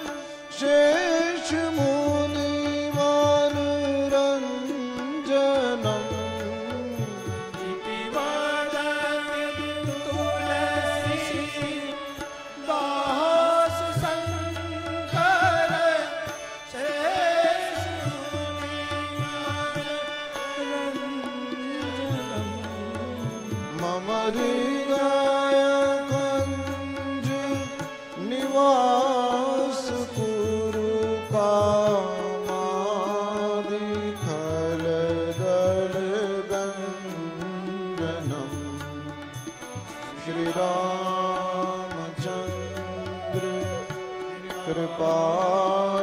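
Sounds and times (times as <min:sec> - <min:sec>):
man singing devotional melody: 0:00.0 - 0:46.0
sustained instrumental accompaniment: 0:00.0 - 0:46.0.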